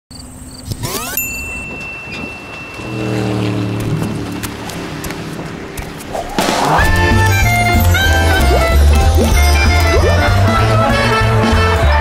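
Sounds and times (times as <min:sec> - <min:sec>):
low held tone: 0:00.9 - 0:10.3
rising whoosh: 0:02.3 - 0:10.3.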